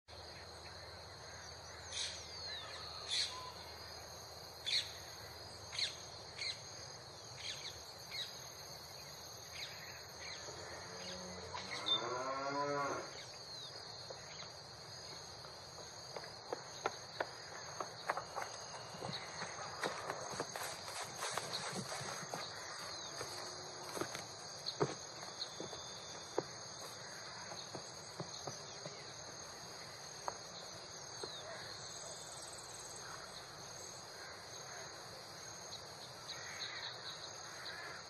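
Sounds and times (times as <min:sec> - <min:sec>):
high insect buzz: 0:09.6 - 0:14.8
cow mooing: 0:10.9 - 0:13.1.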